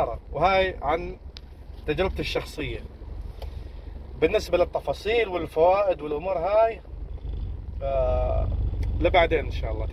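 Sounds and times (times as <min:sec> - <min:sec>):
car cabin rumble: 0:00.0 - 0:09.9.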